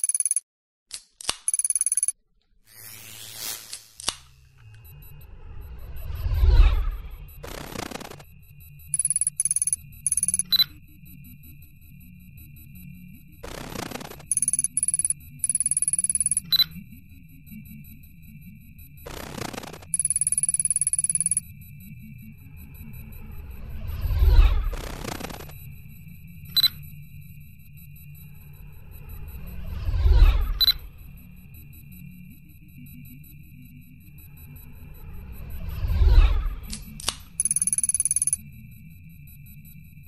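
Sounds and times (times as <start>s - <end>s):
rapid high-pitched electronic beeps: 0.0s - 0.4s, 1.5s - 2.2s, 4.4s - 35.8s, 37.3s - 40.0s
high sine tone: 2.8s - 40.0s.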